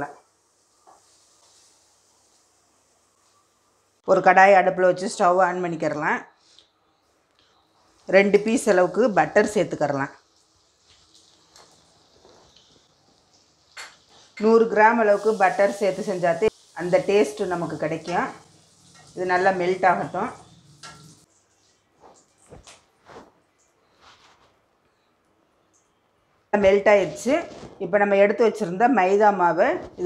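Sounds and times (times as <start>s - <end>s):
butter sizzling in a pan: 0.0s - 4.0s, 7.9s - 21.3s
spatula scraping a pan: 17.0s - 21.3s.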